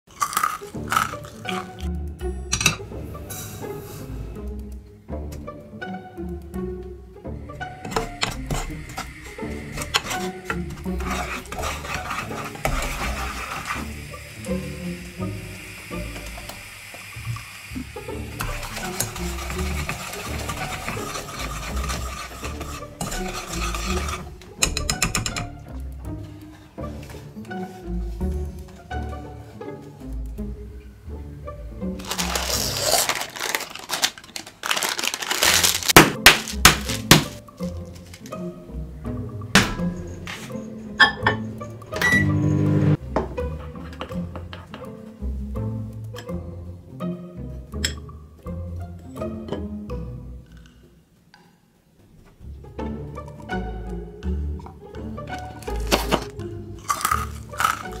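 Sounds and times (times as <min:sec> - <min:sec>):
knife cracking toffee bar: 0:00.1 - 0:01.5, 0:56.8 - 0:58.0
crunchy noises: 0:00.1 - 0:01.9, 0:07.5 - 0:24.3, 0:32.0 - 0:38.4, 0:55.6 - 0:58.0
toffee cracking: 0:00.1 - 0:01.9, 0:32.0 - 0:38.4, 0:55.6 - 0:58.0
background music: 0:00.1 - 0:58.0
paper crinkling: 0:32.0 - 0:38.3, 0:55.6 - 0:58.0
music with plucked bass: 0:38.4 - 0:50.5.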